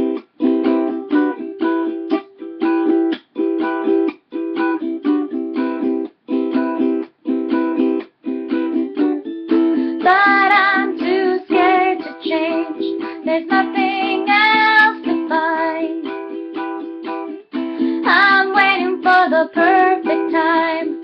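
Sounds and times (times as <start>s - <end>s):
ukulele strumming chords: 0.0s - 21.0s.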